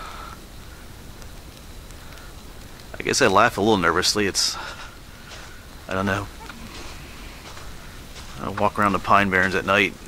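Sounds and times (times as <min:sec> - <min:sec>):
faint steady hiss: 0:00.0 - 0:10.0
soft ticks: 0:01.1 - 0:03.0.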